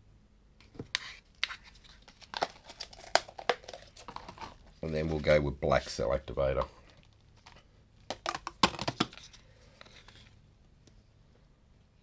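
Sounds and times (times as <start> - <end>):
paint containers clicking and rustling: 1.5 - 5.4, 6.6 - 10.3.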